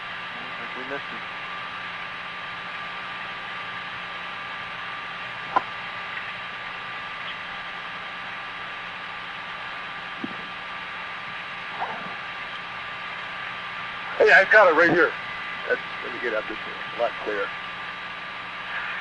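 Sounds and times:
faint steady tones: 0:00.0 - 0:19.0
low hum: 0:00.0 - 0:19.0
steady hiss: 0:04.6 - 0:19.0.

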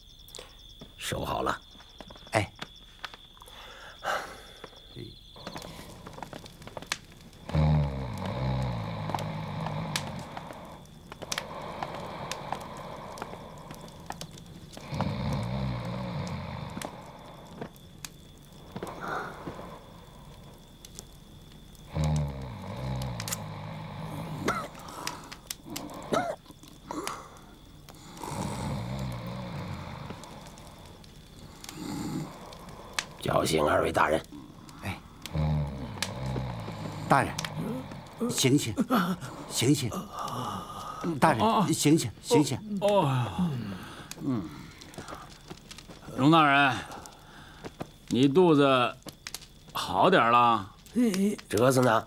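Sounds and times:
man snoring: 0:07.4 - 0:13.8, 0:14.8 - 0:17.4, 0:21.9 - 0:24.8, 0:28.0 - 0:30.7, 0:31.6 - 0:33.0, 0:35.2 - 0:38.4.

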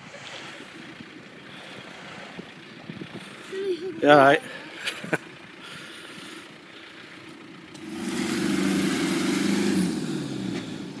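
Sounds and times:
diesel engine revving hard: 0:07.7 - 0:11.0.

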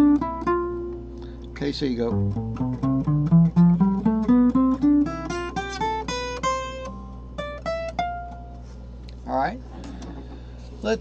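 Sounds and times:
guitar playing single notes: 0:00.0 - 0:09.0.

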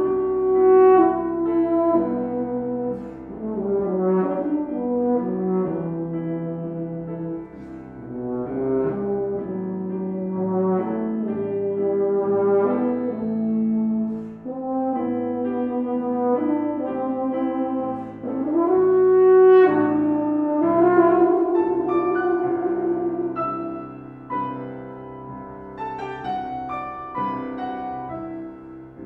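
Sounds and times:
piano accompaniment: 0:00.0 - 0:29.0
euphonium playing: 0:12.8 - 0:25.0.

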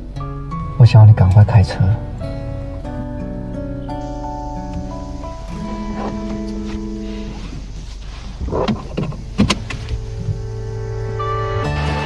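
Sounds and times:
soft held music notes: 0:00.0 - 0:12.0
sharp clicks and knocks: 0:08.4 - 0:10.4.

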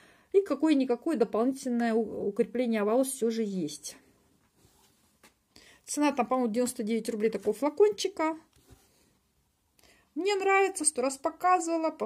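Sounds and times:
intake of breath: 0:00.0 - 0:00.3.

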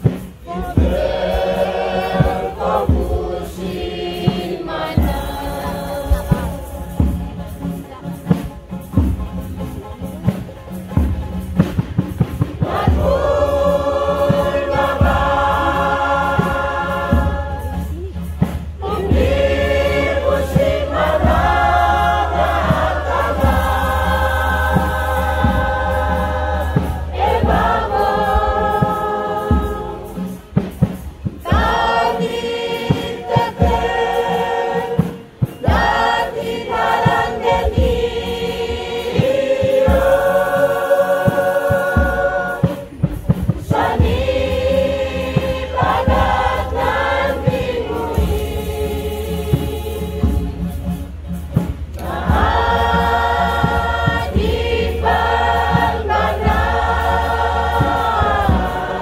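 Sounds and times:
choir singing: 0:00.0 - 0:09.2, 0:11.0 - 0:59.0.

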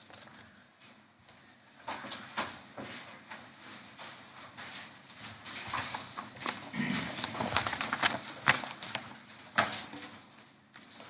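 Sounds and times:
paper rustling and knocking: 0:05.6 - 0:10.3.

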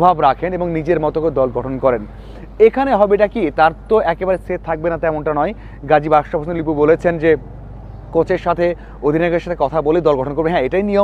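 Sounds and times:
man speaking: 0:00.0 - 0:07.5, 0:08.2 - 0:11.0.

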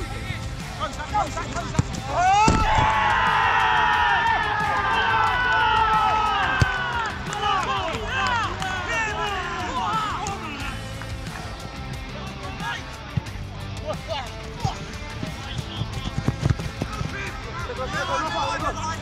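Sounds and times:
players shouting and cheering: 0:00.0 - 0:19.0.

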